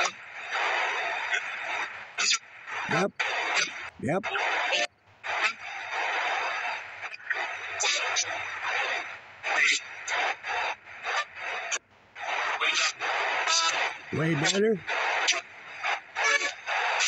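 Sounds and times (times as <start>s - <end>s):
clipped broadcast voices: 0.0s - 17.0s
radio static bursts: 0.0s - 17.0s.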